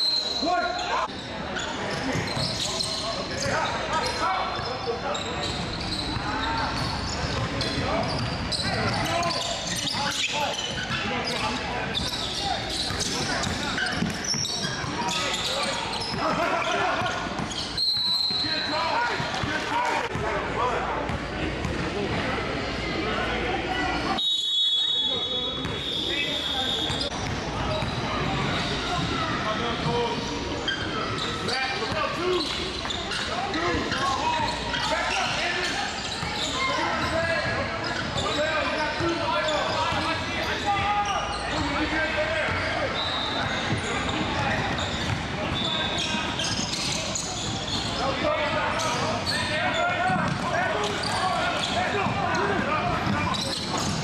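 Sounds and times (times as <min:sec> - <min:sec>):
indistinct shouting and chatter: 0:00.0 - 0:54.0
basketballs bouncing on floor: 0:06.8 - 0:09.1, 0:44.6 - 0:45.6, 0:50.0 - 0:54.0.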